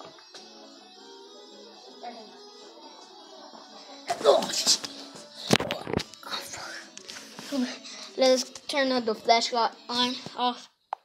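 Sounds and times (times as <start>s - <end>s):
boy whispering: 6.2s - 8.5s.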